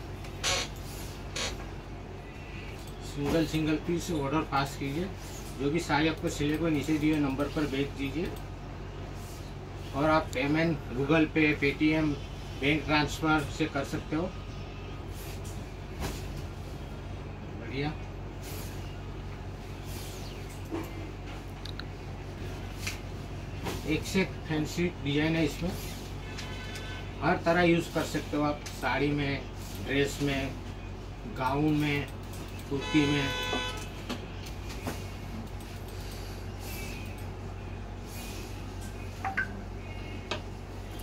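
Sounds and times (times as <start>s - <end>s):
steady low hum: 0.0s - 41.0s
short electronic beeps: 39.2s - 39.6s.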